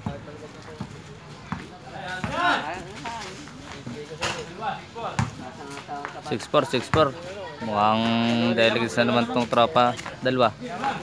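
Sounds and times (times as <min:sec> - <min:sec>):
basketball bouncing on concrete: 0:00.0 - 0:03.1, 0:05.0 - 0:07.3
players' voices: 0:00.0 - 0:11.0.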